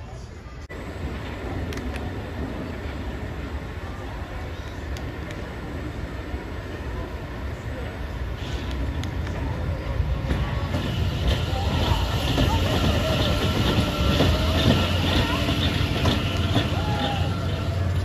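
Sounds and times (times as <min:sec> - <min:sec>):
roller coaster wheels rumbling: 0:00.6 - 0:18.0.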